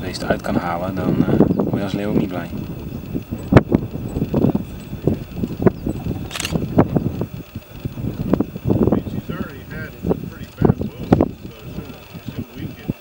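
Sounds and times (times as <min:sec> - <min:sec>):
microphone handling noise: 0:00.0 - 0:13.0
wind rumble on microphone: 0:00.0 - 0:13.0
sharp clicks: 0:02.6 - 0:07.9.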